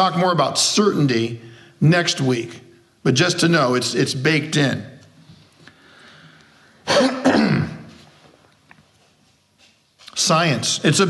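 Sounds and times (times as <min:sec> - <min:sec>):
man clearing his throat: 0:06.9 - 0:08.0.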